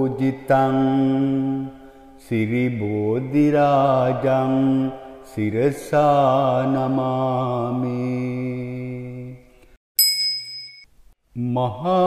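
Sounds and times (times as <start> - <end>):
bell ringing high: 10.0 - 10.9.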